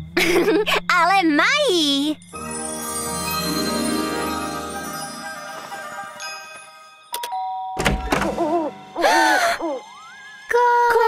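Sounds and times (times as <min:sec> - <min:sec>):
two-tone ding-dong chime: 0:06.2 - 0:07.9.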